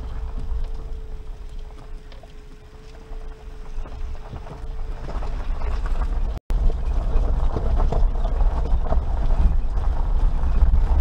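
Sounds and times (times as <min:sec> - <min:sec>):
engine and tyres rumbling: 0:00.0 - 0:11.0
gravel ticks and rattles: 0:00.0 - 0:11.0.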